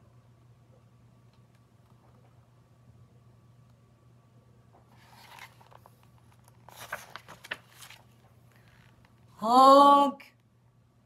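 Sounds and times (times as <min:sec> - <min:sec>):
book page being turned: 0:04.9 - 0:09.1.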